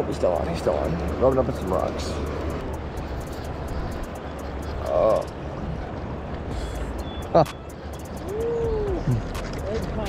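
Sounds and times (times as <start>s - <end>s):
river water rushing: 0.0s - 10.0s
faint ticks: 1.8s - 5.4s.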